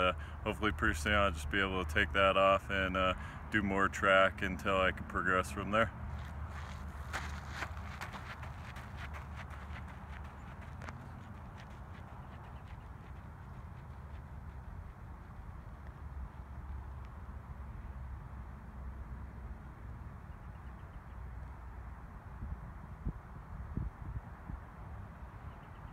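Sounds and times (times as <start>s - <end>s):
running footsteps on track: 5.8s - 17.6s.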